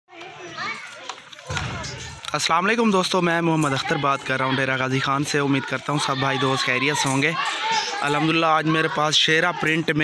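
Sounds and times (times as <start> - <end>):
faint background voices: 0.1 - 10.0.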